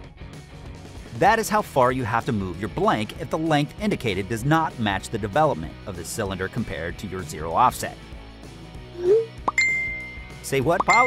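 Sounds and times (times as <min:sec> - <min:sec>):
light background music: 0:00.2 - 0:11.0
upward swoop: 0:09.0 - 0:09.4
notification ding: 0:09.0 - 0:11.0.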